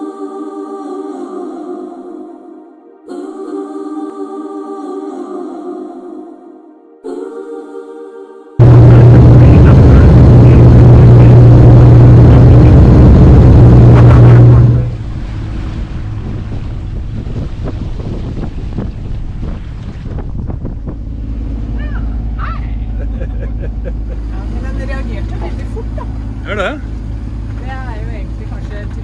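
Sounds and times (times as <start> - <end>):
propeller airliner cabin drone: 8.6 - 17.8, 19.1 - 29.0
wind on microphone: 8.6 - 21.9
water rushing past hull: 8.6 - 23.0, 23.7 - 29.0
boat engine hum: 8.6 - 29.0.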